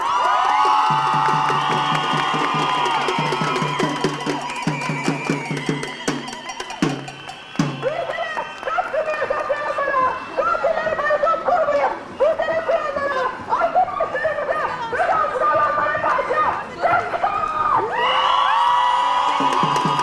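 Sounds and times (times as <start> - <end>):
hand drums beating: 0.9 - 8.0, 19.3 - 20.0.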